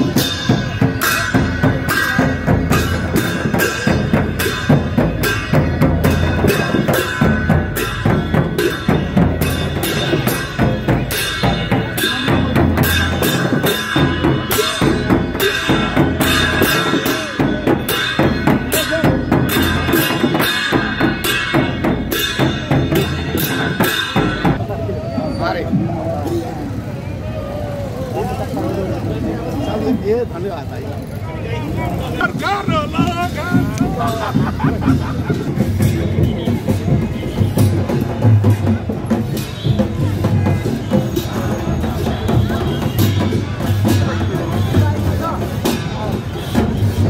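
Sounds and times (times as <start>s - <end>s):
barrel drums beating: 0.0s - 24.6s, 32.2s - 47.0s.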